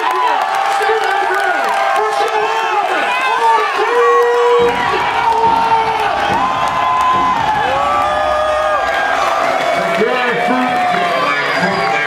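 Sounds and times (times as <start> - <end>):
concert crowd cheering and shouting: 0.0 - 12.0.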